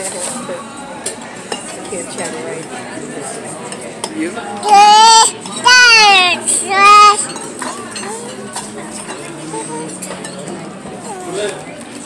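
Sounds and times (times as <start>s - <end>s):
restaurant background voices: 0.0s - 12.0s.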